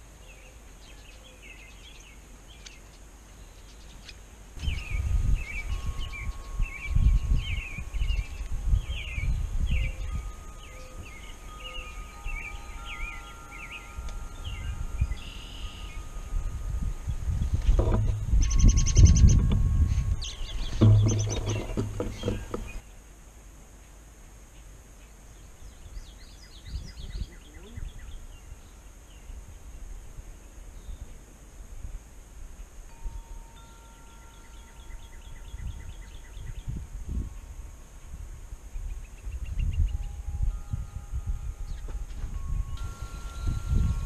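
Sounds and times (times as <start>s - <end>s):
small birds chirping: 0.0s - 23.0s, 24.5s - 29.8s, 33.8s - 37.5s, 38.7s - 44.0s.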